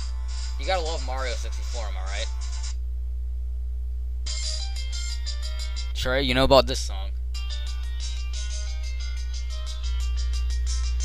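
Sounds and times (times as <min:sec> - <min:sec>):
steady low hum: 0:00.0 - 0:11.0
music from small phone speaker: 0:07.4 - 0:11.0.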